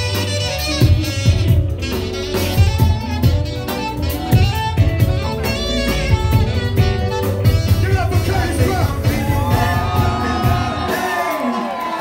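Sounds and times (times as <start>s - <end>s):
saxophone: 0.0s - 12.0s
steady drum beat: 0.0s - 12.0s.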